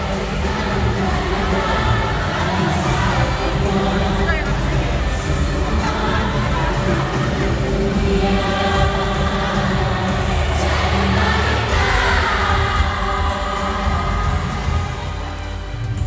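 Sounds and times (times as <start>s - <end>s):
music with singing voices: 0.0s - 16.0s
strong continuous bass: 0.0s - 16.0s.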